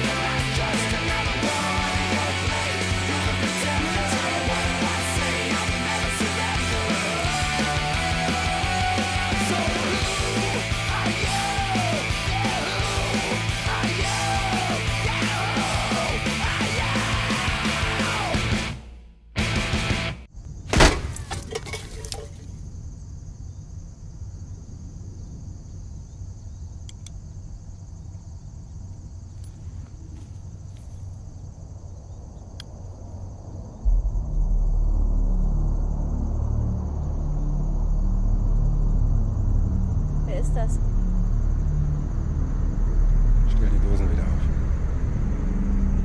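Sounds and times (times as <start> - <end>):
loud rock music: 0.0 - 20.3
sharp bang: 20.7 - 21.5
loud low rumble: 32.2 - 46.0.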